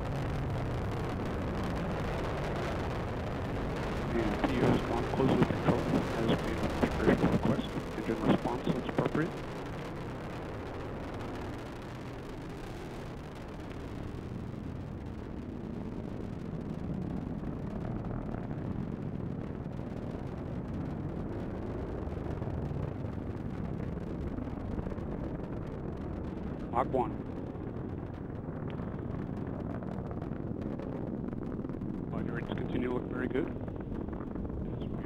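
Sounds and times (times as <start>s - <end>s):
rocket engine rumble: 0.0s - 35.0s.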